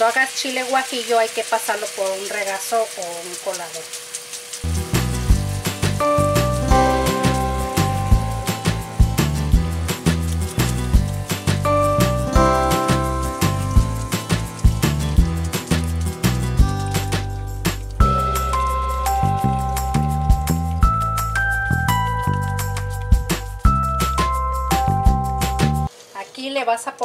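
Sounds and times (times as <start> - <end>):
background music with bass and beat: 4.7 - 25.9.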